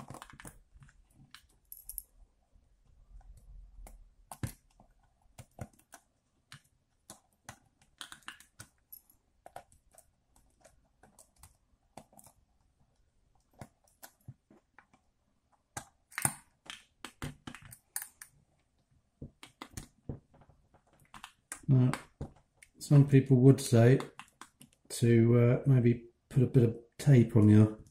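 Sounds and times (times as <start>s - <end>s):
fingers clicking on plastic: 3.1s - 18.2s, 19.2s - 22.8s, 24.0s - 24.9s.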